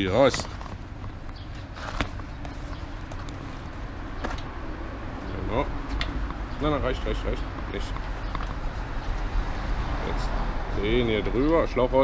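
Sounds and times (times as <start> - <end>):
city street rumble: 0.0 - 12.0
bicycle tyre being handled: 0.2 - 4.5.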